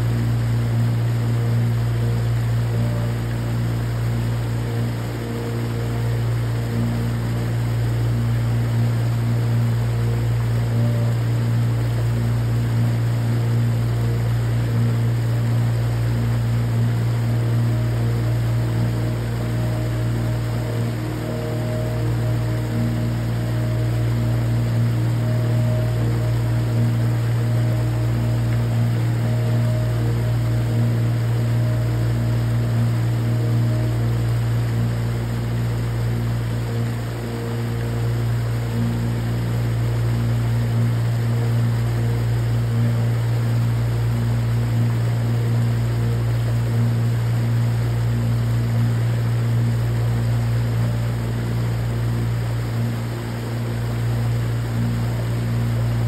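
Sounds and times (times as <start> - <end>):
creek water rushing over rocks: 0.0 - 56.0
soft ambient music: 0.0 - 56.0.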